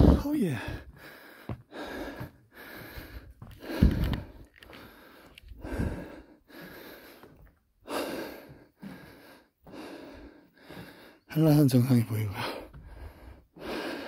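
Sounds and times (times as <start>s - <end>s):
person breathing hard: 0.0s - 11.3s, 12.4s - 14.0s.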